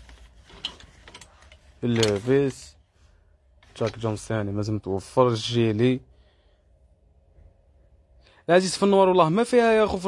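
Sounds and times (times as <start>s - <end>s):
man speaking: 3.8s - 6.1s, 8.5s - 10.0s.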